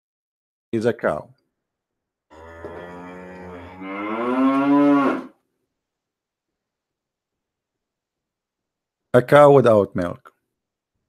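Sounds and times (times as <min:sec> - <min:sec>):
cow mooing: 0:02.3 - 0:05.4.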